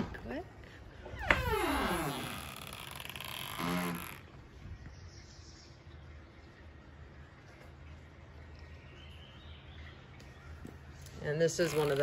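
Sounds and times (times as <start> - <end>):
door creaking: 1.0 - 4.2, 11.6 - 12.0.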